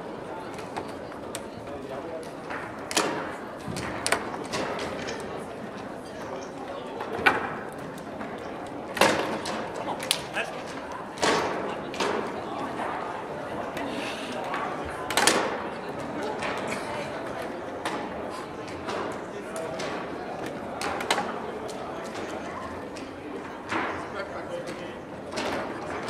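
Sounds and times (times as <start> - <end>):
murmur of voices: 0.0 - 26.0.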